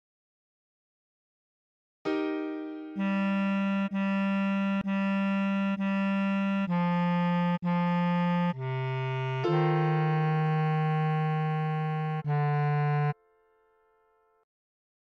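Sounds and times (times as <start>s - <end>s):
bass clarinet melody: 2.9s - 13.2s.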